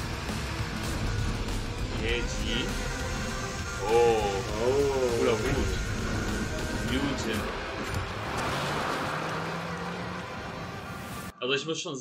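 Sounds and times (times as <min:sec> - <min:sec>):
low car engine tone: 0:00.0 - 0:11.3
wheels churning dirt: 0:06.4 - 0:11.3.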